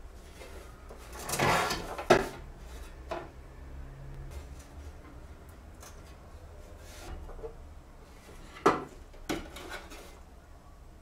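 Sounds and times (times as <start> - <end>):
metal case scraping on tile floor: 0.2 - 3.2.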